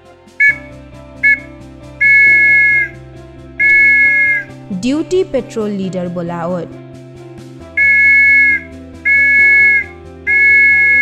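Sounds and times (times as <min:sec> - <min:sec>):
two-note whistle blasts: 0:00.4 - 0:03.0, 0:03.6 - 0:04.6, 0:07.8 - 0:11.0.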